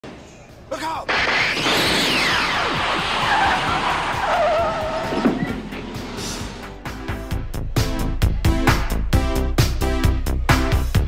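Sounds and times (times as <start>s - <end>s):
tire screech: 1.1s - 6.8s
car noise falling in pitch: 1.1s - 7.1s
music: 3.6s - 11.0s.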